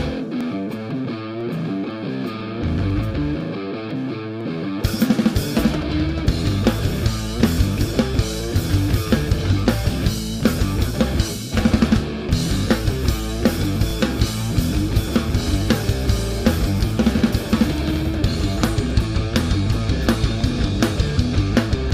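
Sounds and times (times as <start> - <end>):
drum kit: 0.0 - 3.5, 4.8 - 21.9
bass guitar: 0.0 - 21.9
electric guitar: 0.0 - 21.9.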